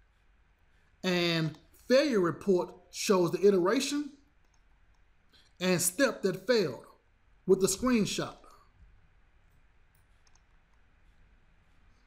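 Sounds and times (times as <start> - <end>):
faint computer mouse clicks: 9.9 - 10.8.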